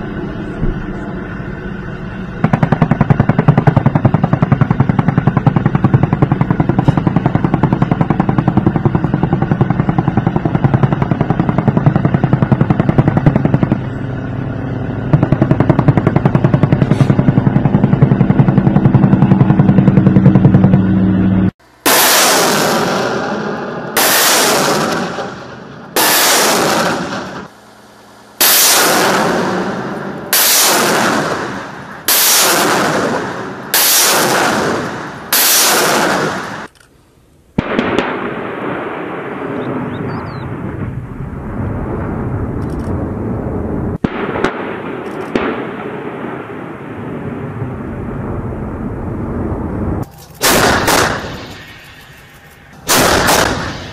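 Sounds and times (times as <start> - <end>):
rocket launcher blasts: 21.6 - 36.7, 37.6 - 53.9
rapid automatic gunfire: 50.4 - 51.6, 52.8 - 53.9.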